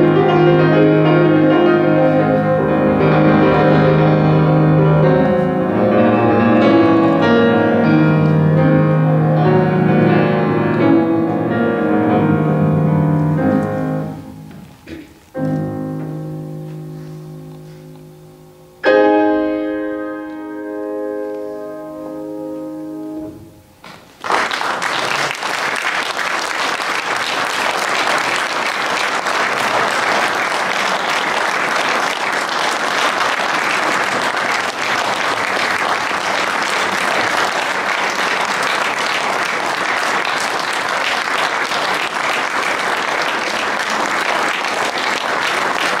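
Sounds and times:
audience applause: 0:24.1 - 0:46.0.

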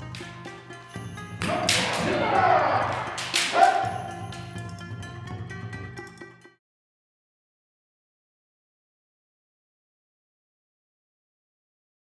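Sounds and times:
background music: 0:00.0 - 0:06.6
loud kiai shout: 0:01.4 - 0:04.4.

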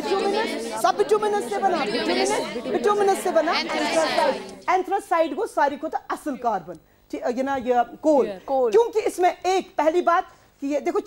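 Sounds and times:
overlapping chatter: 0:00.0 - 0:04.7.

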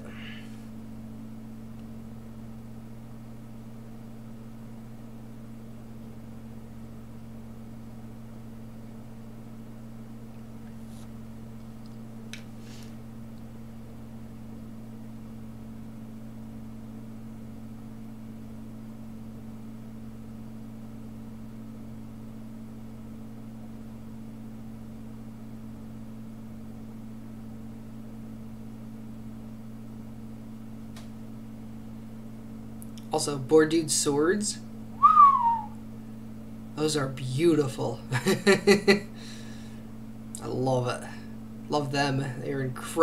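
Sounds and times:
low electrical hum with pulsing: 0:00.0 - 0:43.0.

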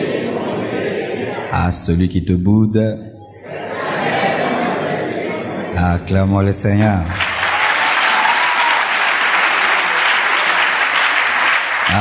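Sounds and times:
congregation clapping: 0:06.8 - 0:12.0.

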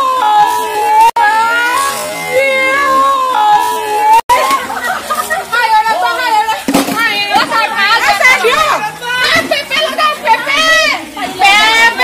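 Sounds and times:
young women talking and shouting: 0:00.0 - 0:12.0.

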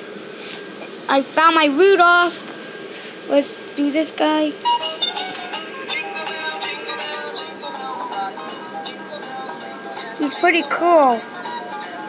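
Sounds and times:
electronic toy song: 0:04.6 - 0:12.0.

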